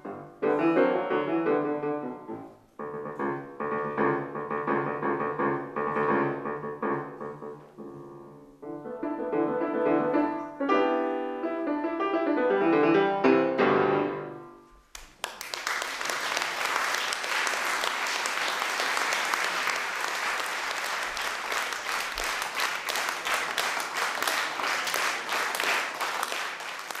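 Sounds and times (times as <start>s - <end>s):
grand piano chords: 0.0s - 14.8s
audience applauding: 14.9s - 27.0s.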